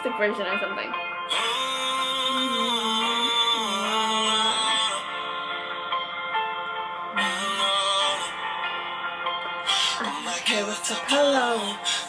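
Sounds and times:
man singing slow r and b song: 1.3 - 5.7, 7.1 - 8.8, 9.7 - 12.0.

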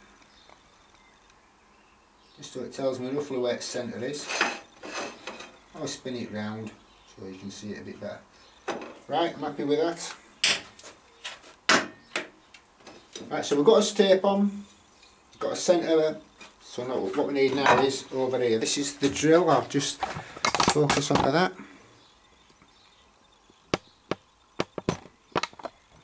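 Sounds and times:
sharp knocks on workbench: 23.7 - 25.6.

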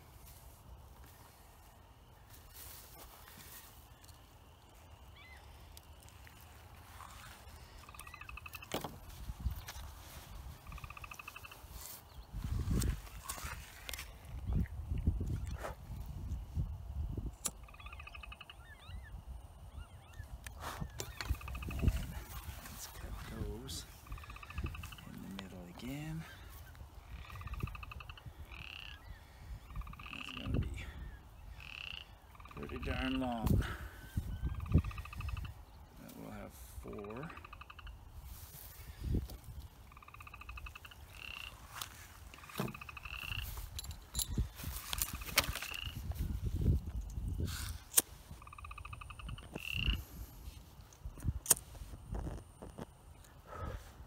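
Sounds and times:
frogs croaking: 0.0 - 54.0
wind rumbling on microphone: 5.1 - 54.0.

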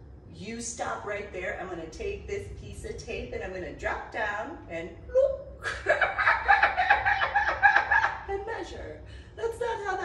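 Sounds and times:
woman laughing high-pitched: 5.6 - 8.3.

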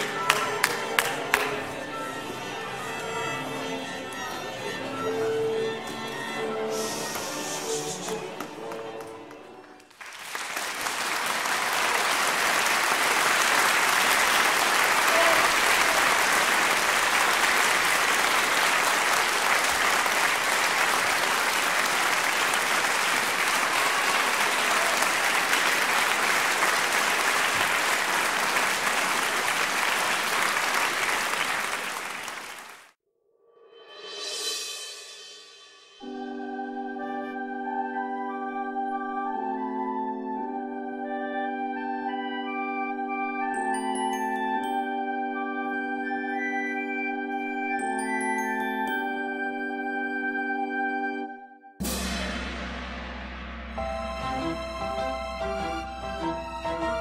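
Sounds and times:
audience applause: 0.0 - 1.6, 7.1 - 33.0
music: 0.0 - 31.5, 33.4 - 57.0.

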